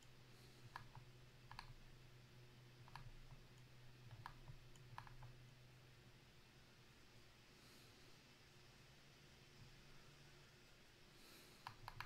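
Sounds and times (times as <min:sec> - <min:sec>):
computer mouse clicks: 0:00.0 - 0:01.9, 0:02.8 - 0:05.4, 0:11.6 - 0:12.0
low steady hum: 0:00.0 - 0:12.0.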